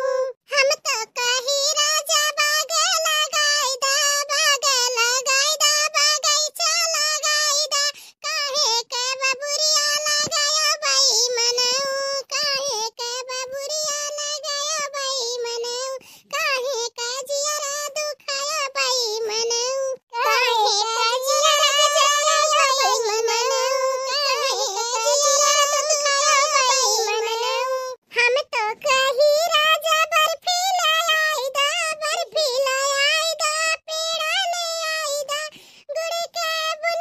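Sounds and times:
high-pitched cartoon voice singing: 0.0 - 37.0.

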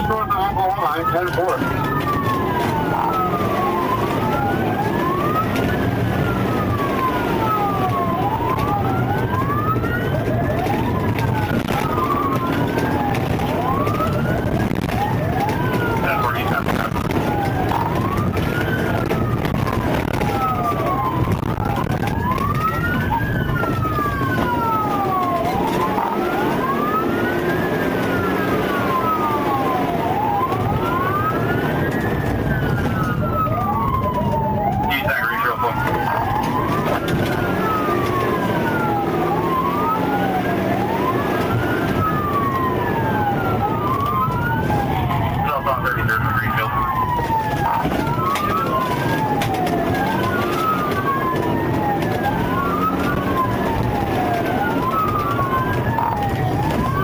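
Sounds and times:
car engine and road noise: 0.0 - 57.0
police sirens wailing: 0.0 - 57.0.

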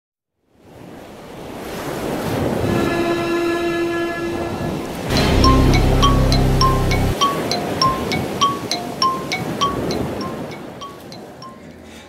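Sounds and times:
long held horn-like tone: 2.5 - 7.2
music with heavy bass beat: 5.1 - 7.2
bright mallet notes: 5.1 - 11.6.

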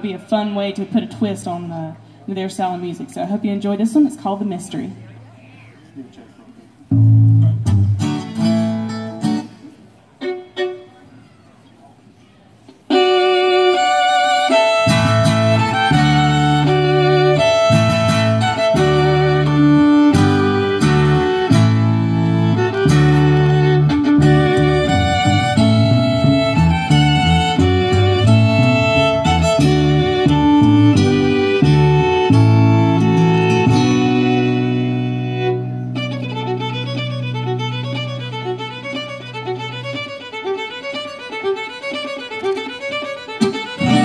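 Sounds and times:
fiddle: 5.0 - 44.0
upright bass: 6.9 - 9.0, 14.8 - 40.0, 43.8 - 44.0
acoustic guitar: 6.9 - 11.4, 12.6 - 41.2, 41.8 - 44.0.

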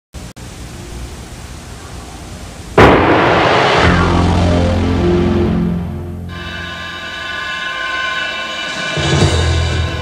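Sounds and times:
videotape hum and hiss: 0.2 - 6.3
sudden loud crash: 2.8 - 7.4
production logo music sting: 2.8 - 10.0
low held musical notes: 3.8 - 7.2.

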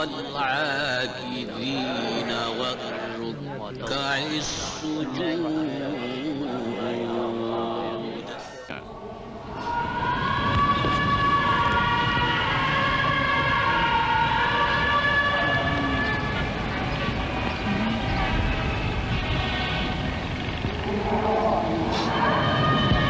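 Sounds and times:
person chanting wavering notes: 0.0 - 19.9, 20.6 - 23.0
steady low noise: 0.0 - 23.0.

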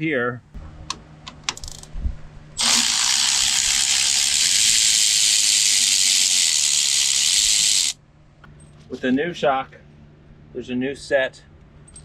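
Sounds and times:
cordless electric ratchet running: 2.6 - 8.0.

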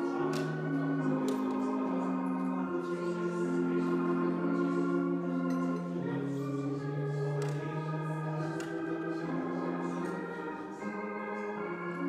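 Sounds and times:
organ playing chords: 0.0 - 12.0
voices singing: 0.0 - 12.0.

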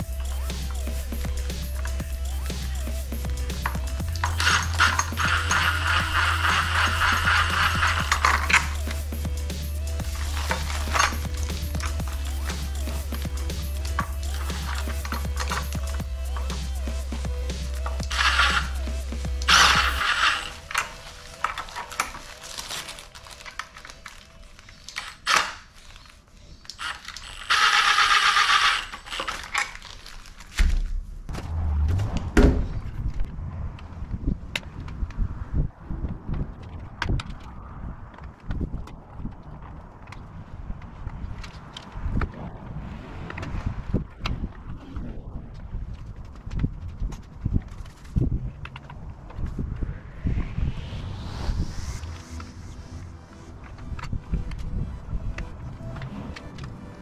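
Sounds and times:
background music: 0.0 - 25.6, 50.6 - 57.0
cordless drill running: 26.8 - 29.4.

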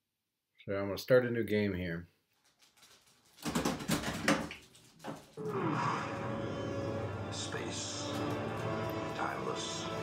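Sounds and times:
music bed: 5.4 - 10.0.

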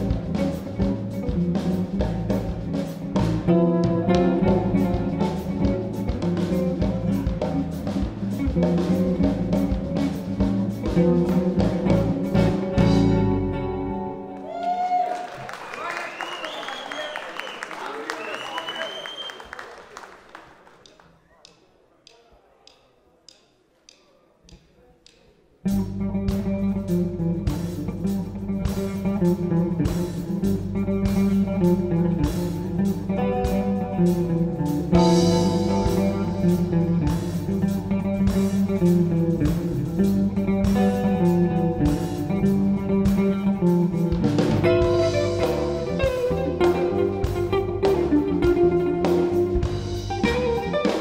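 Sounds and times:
electric guitar playing lead: 0.0 - 14.6, 25.7 - 51.0
bass guitar: 0.0 - 14.9, 25.6 - 51.0
drum kit: 0.0 - 15.0, 22.7 - 51.0.

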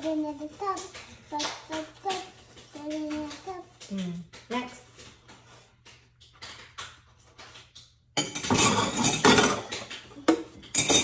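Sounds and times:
loud clatter of dishes and cutlery: 0.0 - 11.0
dishes clinking while washing up: 6.9 - 11.0.

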